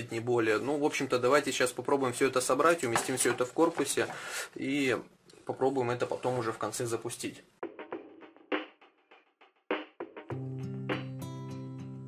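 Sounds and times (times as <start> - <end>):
background music: 7.6 - 12.0.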